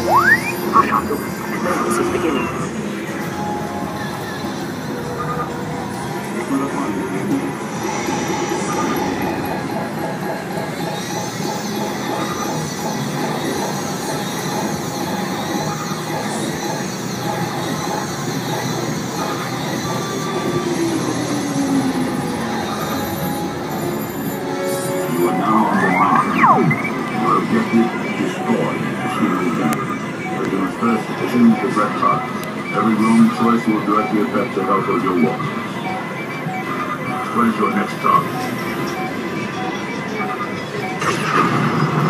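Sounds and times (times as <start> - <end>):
slot machine music and effects: 0.0 - 1.9, 21.1 - 42.0.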